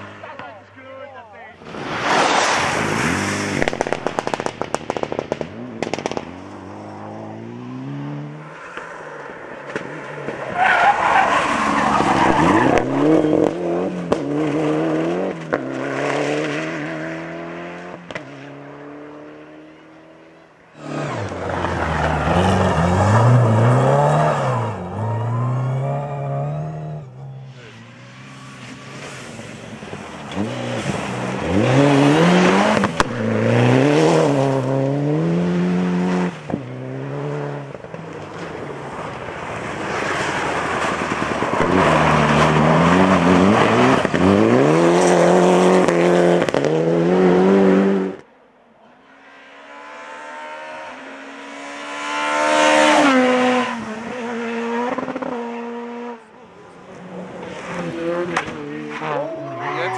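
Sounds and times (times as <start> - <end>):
rally car engines revving: 0.0 - 59.9
gravel spraying off tyres: 1.6 - 6.2.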